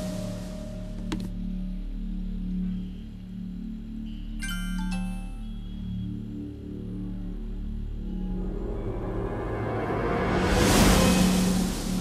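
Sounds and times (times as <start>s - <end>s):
low droning film score: 0.0s - 12.0s.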